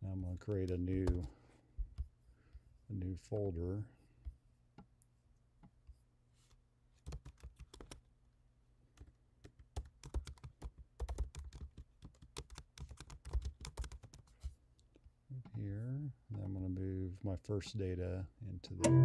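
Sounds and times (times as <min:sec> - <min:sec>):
man talking: 0:00.0 - 0:01.3, 0:02.9 - 0:03.9, 0:15.3 - 0:19.0
computer keyboard clicks: 0:07.0 - 0:08.0, 0:09.0 - 0:14.2.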